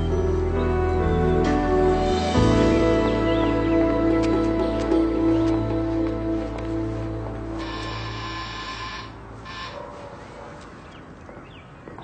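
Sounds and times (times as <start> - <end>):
shimmering background music chord: 0.0 - 8.4.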